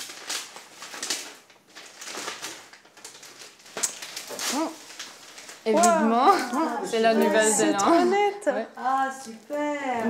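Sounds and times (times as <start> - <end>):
wrapping paper rustling and crinkling: 0.0 - 10.0.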